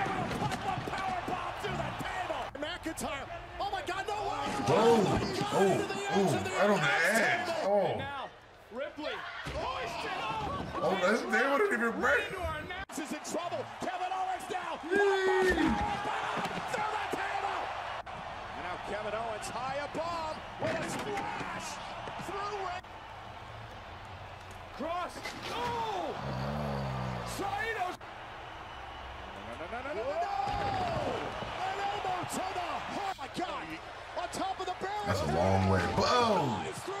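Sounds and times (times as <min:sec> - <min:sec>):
arena crowd: 0:00.0 - 0:37.0
commentators talking: 0:04.4 - 0:08.2, 0:34.4 - 0:36.8.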